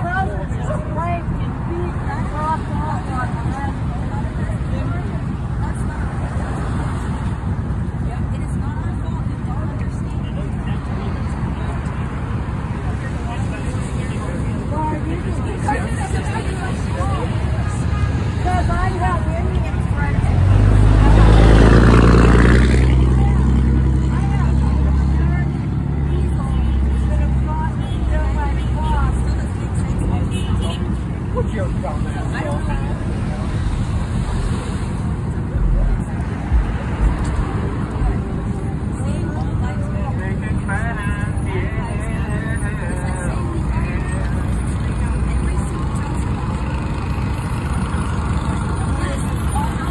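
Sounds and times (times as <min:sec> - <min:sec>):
indistinct voices: 0:00.0 - 0:49.9
low street rumble: 0:00.0 - 0:49.9
heavy low thumps: 0:35.6 - 0:38.4.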